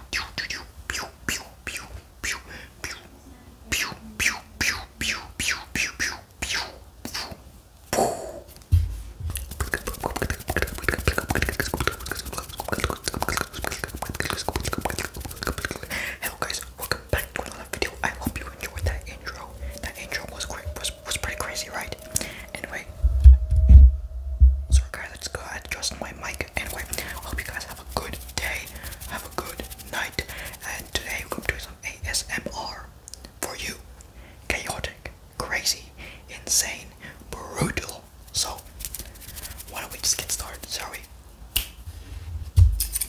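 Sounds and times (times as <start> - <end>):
whispering: 0.0 - 7.5, 9.4 - 23.6, 24.6 - 33.9, 34.5 - 41.1
heavy low thumps: 8.7 - 9.5, 22.3 - 25.2.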